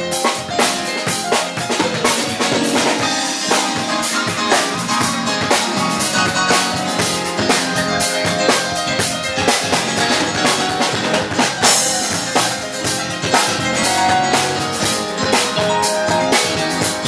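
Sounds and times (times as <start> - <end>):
drum kit beat: 0.0 - 17.0
electronic keyboard playing: 0.0 - 17.0.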